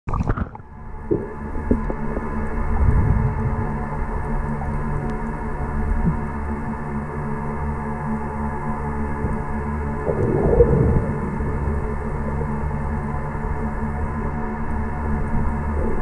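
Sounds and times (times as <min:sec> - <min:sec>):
low underwater rumble: 0:00.1 - 0:16.0
underwater hum of held tones: 0:00.1 - 0:16.0.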